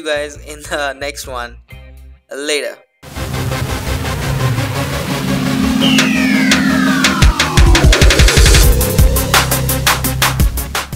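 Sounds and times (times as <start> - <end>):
falling synth sweep: 3.1 - 10.2
low electronic drone: 3.1 - 10.4.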